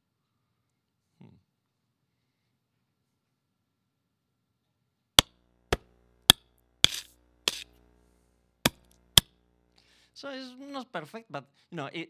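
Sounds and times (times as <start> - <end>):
drumstick hits: 5.2 - 7.8, 8.7 - 9.4.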